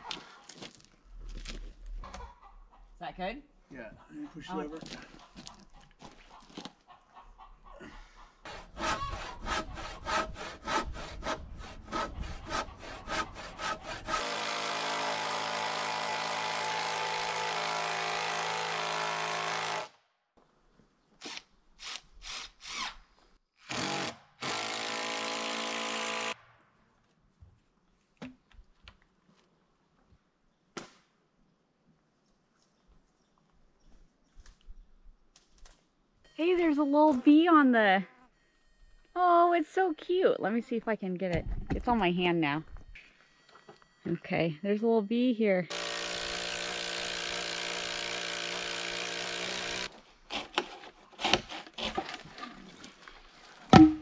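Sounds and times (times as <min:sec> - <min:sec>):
power drill running: 0:13.6 - 0:19.9, 0:45.7 - 0:50.0.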